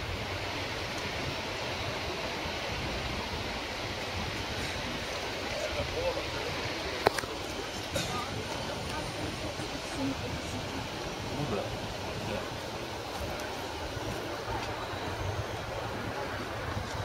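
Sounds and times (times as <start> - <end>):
faint distant voices: 0.0 - 17.0
low rumble of city noise: 0.0 - 17.0.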